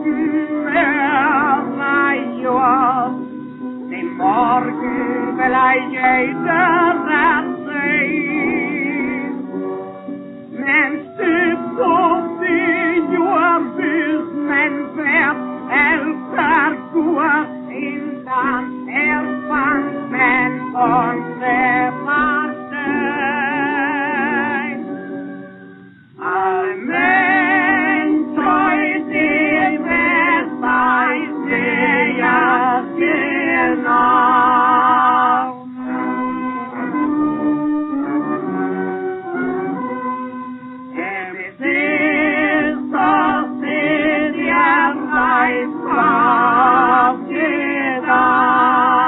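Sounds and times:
man singing with wide vibrato: 0:00.0 - 0:03.2, 0:10.6 - 0:24.8, 0:26.2 - 0:36.2, 0:41.0 - 0:49.0
musical accompaniment: 0:00.0 - 0:49.0
brass-led band playing: 0:27.6 - 0:41.2.

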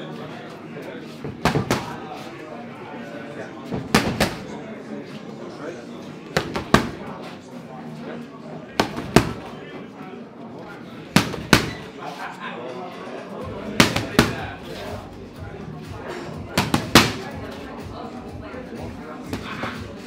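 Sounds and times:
boxing gloves smacking mitts: 0:01.3 - 0:02.0, 0:03.8 - 0:04.5, 0:06.4 - 0:07.1, 0:08.8 - 0:09.5, 0:11.1 - 0:11.9, 0:13.7 - 0:14.5, 0:16.6 - 0:17.3.

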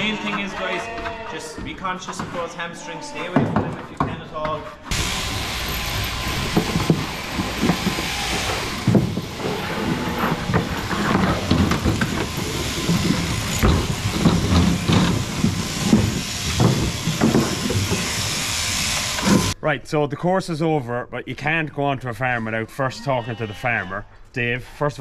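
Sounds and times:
thumps on wooden board: 0:03.3 - 0:04.6, 0:06.5 - 0:18.1
electric shearing machines buzzing: 0:04.9 - 0:19.6.

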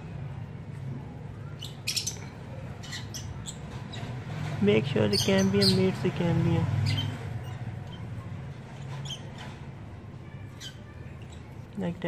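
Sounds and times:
small birds chirping: 0:01.2 - 0:12.0.

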